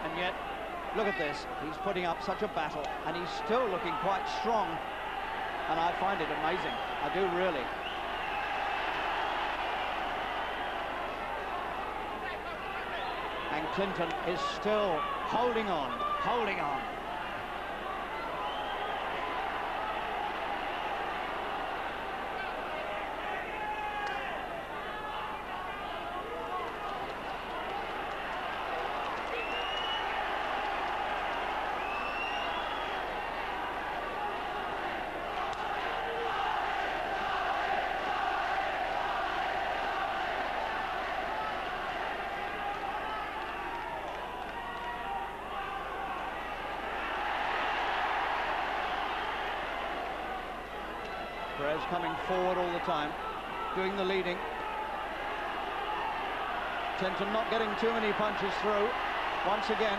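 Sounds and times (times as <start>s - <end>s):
crowd cheering and shouting: 0.0s - 59.9s.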